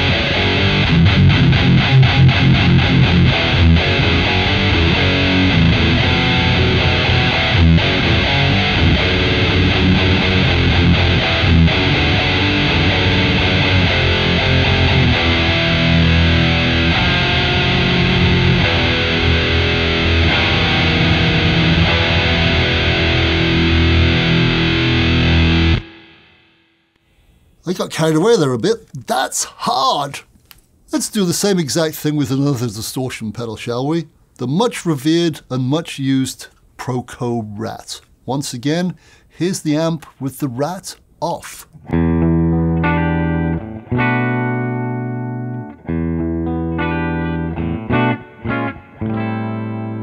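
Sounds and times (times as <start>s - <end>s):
distorted electric guitar riff: 0.0s - 27.3s, 41.2s - 50.0s.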